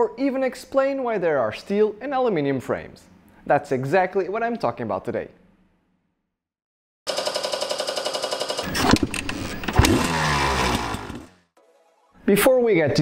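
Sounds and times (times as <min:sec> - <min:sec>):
motorcycle engine revving: 0:08.6 - 0:11.4.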